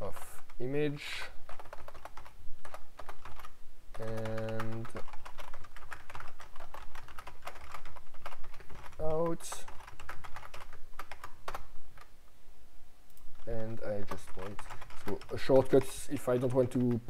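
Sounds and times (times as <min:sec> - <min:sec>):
typing on computer keyboard: 0:01.5 - 0:12.1, 0:13.4 - 0:17.0.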